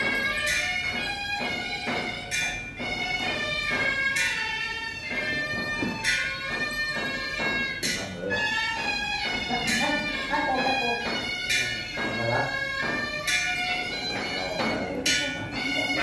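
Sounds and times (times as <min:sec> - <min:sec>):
cymbals crashing: 0:00.0 - 0:16.0
reedy wind instrument melody: 0:00.0 - 0:16.0.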